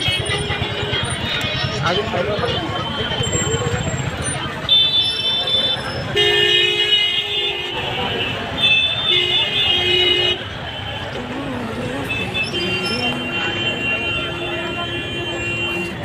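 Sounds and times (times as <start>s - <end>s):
street crowd chatter: 0.0s - 16.0s
car horn honking: 4.6s - 11.2s, 12.0s - 16.0s.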